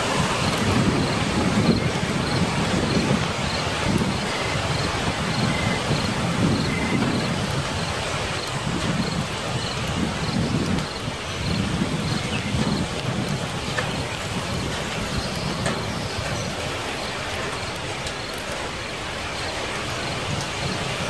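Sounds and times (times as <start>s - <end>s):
low thunder rumbles: 0.0s - 18.6s
rain and wind rushing: 0.0s - 21.0s.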